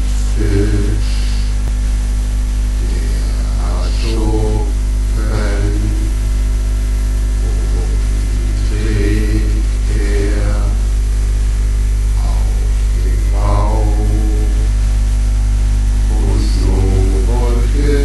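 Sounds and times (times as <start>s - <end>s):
loud low hum: 0.0s - 18.0s.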